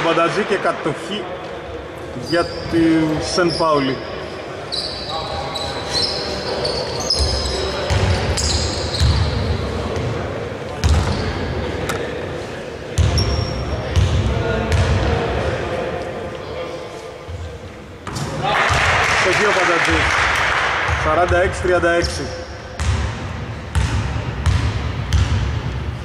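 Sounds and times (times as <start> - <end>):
players' voices: 0.0 - 22.8
basketball bouncing on floor: 22.8 - 25.6.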